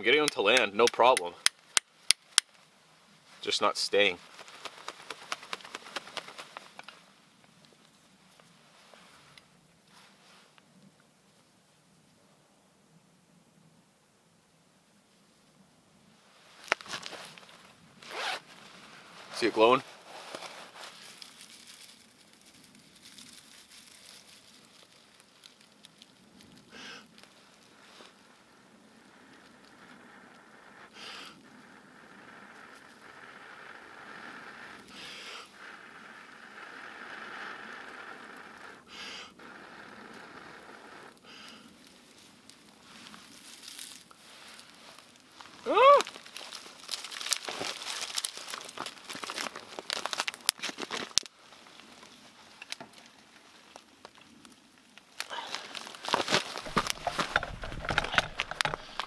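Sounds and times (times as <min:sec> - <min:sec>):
dry tinder crackling: 0:00.0 - 0:10.9, 0:16.4 - 0:59.0
person blowing breaths: 0:30.7 - 0:31.4, 0:33.4 - 0:35.8, 0:38.7 - 0:39.9, 0:55.3 - 0:55.9, 0:58.0 - 0:59.0.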